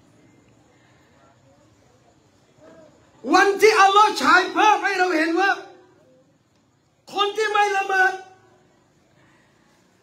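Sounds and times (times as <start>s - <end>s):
man speaking: 3.2s - 5.9s, 7.1s - 8.4s.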